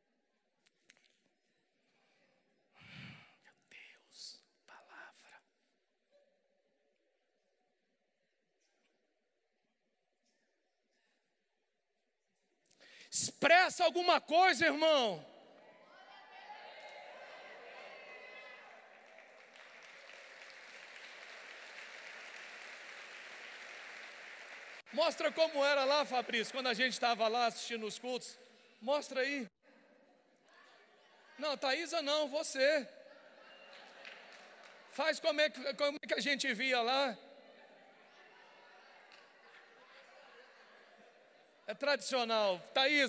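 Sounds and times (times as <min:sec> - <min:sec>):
man whispering: 0:02.8 - 0:05.7
congregation applauding: 0:16.6 - 0:27.9, 0:33.5 - 0:35.7.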